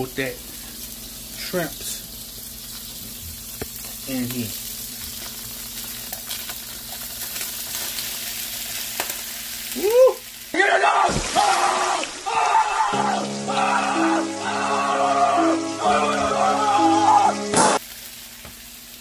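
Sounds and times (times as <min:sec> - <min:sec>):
shrimp sizzling in butter: 0:00.1 - 0:10.6, 0:12.3 - 0:16.2, 0:16.8 - 0:19.0
man yelling: 0:09.8 - 0:17.6
music: 0:13.0 - 0:17.8.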